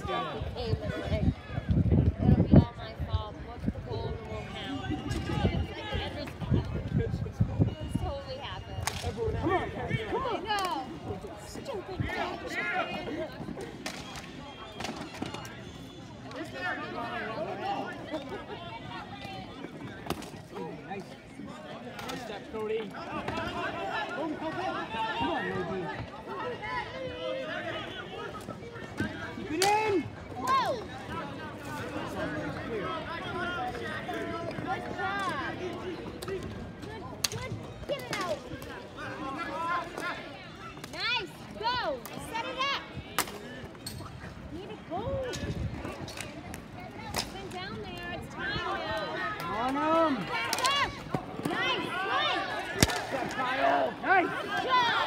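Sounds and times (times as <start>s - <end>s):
people calling and chattering: 0.0s - 55.0s.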